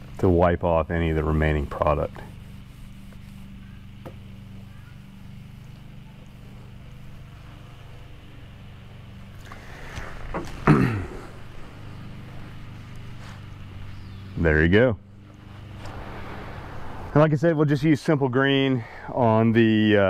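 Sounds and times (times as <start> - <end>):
low motor hum: 0.0 - 20.0.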